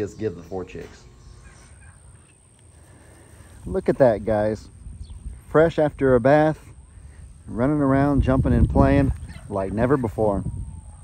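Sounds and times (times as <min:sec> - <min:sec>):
chicks chirping: 0:00.0 - 0:11.0.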